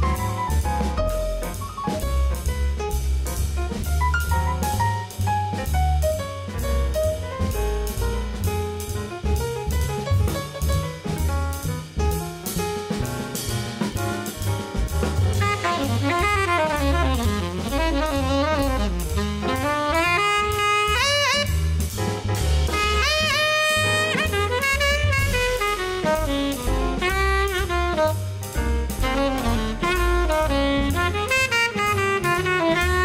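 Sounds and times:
drum kit: 0.0s - 33.0s
grand piano: 0.0s - 33.0s
upright bass: 0.0s - 33.0s
tenor saxophone solo: 15.3s - 21.9s, 22.7s - 33.0s.

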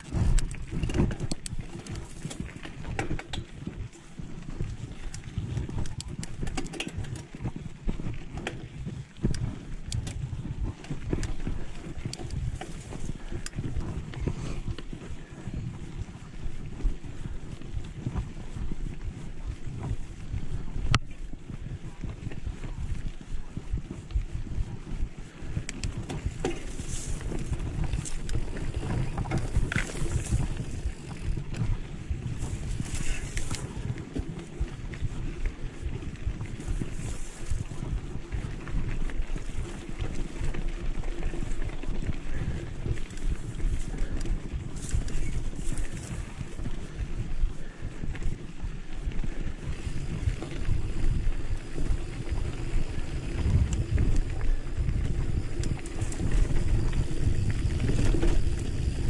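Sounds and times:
bike knocking and rattling: 0.0s - 59.0s
wind buffeting microphone: 0.0s - 59.0s.

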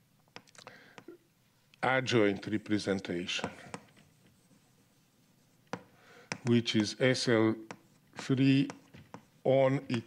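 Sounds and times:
chalk scratching on blackboard: 2.4s - 10.0s.

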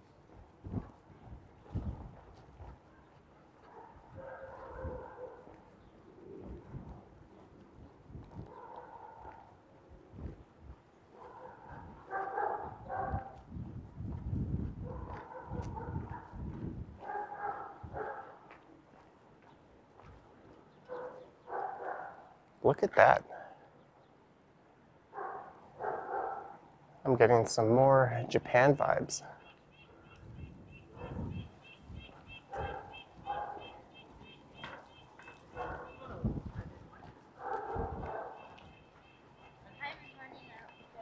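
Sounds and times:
pigeons cooing: 5.8s - 6.9s.

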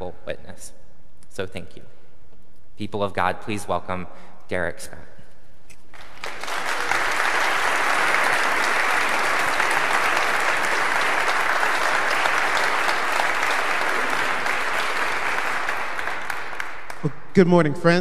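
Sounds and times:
congregation applauding: 5.9s - 17.4s.

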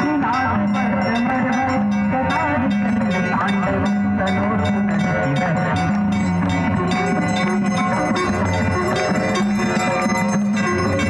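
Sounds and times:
bells struck: 0.0s - 11.0s
devotional music: 0.0s - 11.0s.

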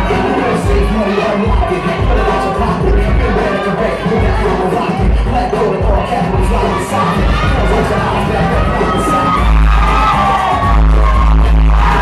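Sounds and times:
loud dance music: 0.0s - 12.0s.

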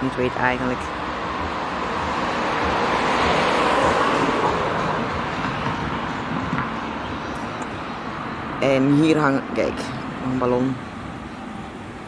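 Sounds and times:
road vehicle passing: 0.0s - 12.0s.

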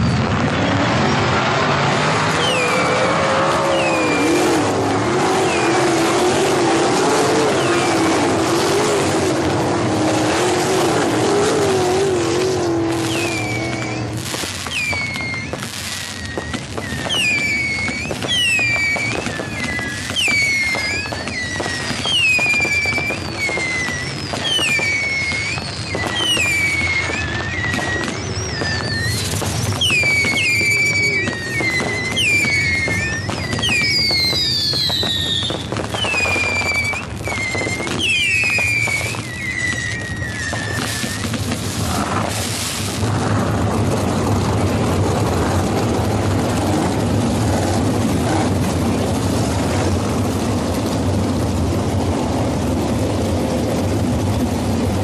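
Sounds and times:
racing car engines: 0.0s - 14.2s
firework crackling pops and bangs: 0.0s - 55.0s
firework whistles falling in pitch: 0.0s - 55.0s.

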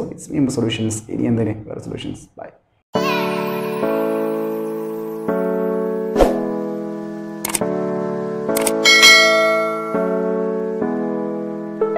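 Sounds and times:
background piano music: 3.0s - 11.9s
bright bell chime: 8.8s - 10.2s.

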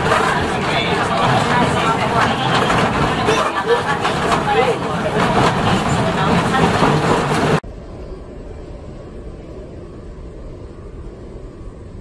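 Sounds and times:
passenger chatter: 0.0s - 7.6s
railway carriage running noise: 0.0s - 7.8s
low rumble of metro station: 0.0s - 12.0s.

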